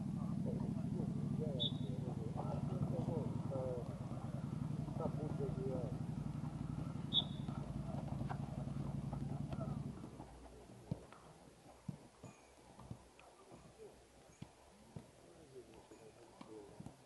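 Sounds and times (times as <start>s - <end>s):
indistinct voices: 0.0s - 10.2s
steady low rumble: 0.0s - 10.9s
footballs being dribbled: 0.3s - 17.0s.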